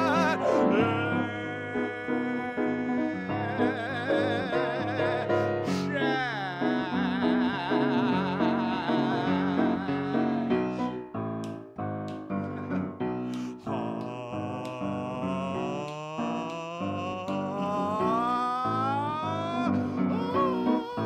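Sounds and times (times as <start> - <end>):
man singing a long note: 0.0 - 10.8, 13.5 - 21.0
piano playing chords: 0.0 - 16.4.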